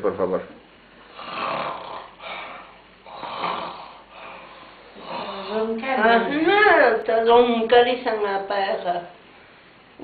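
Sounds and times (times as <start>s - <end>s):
woman imitating snoring: 1.1s - 5.8s.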